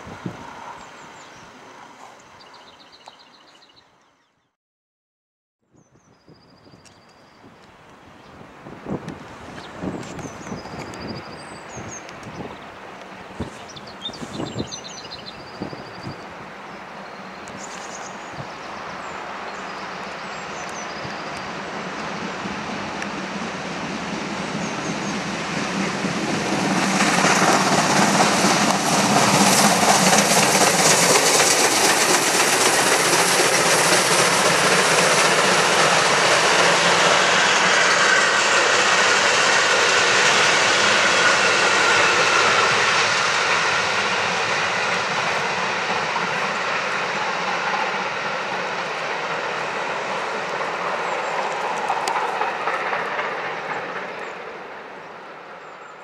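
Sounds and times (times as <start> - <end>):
steam train passing on rails: 0.0 - 3.8, 6.4 - 56.0.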